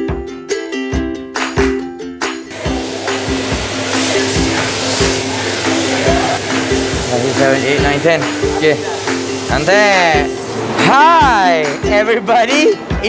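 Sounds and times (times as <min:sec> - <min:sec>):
background music with steady beat: 0:00.0 - 0:13.0
air blowers rushing: 0:02.5 - 0:10.8.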